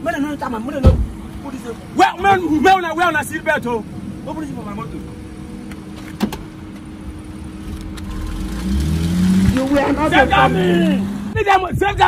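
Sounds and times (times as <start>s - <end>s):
minivan engine idling: 0.0s - 8.6s.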